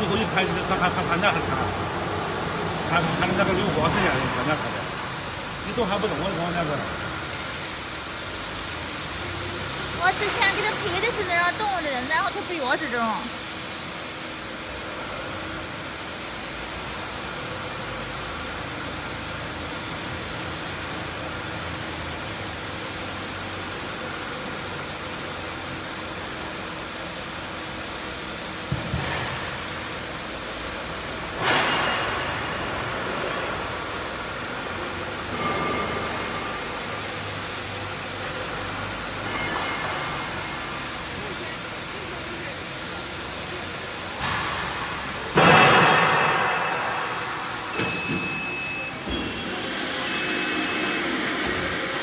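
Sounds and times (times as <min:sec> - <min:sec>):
workshop machinery humming: 0:00.0 - 0:52.0
faint steady tone: 0:46.0 - 0:51.7.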